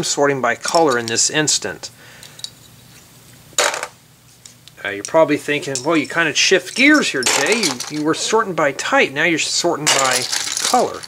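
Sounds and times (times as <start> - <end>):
plastic bricks clattering in tub: 7.2 - 8.1, 9.9 - 11.0.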